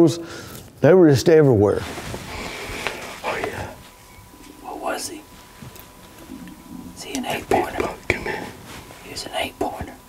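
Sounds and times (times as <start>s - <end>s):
man whispering: 3.0s - 5.3s, 6.2s - 10.0s.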